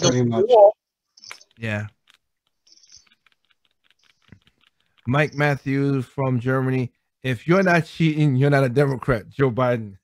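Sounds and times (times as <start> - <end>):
computer keyboard clicking: 1.2 - 5.6.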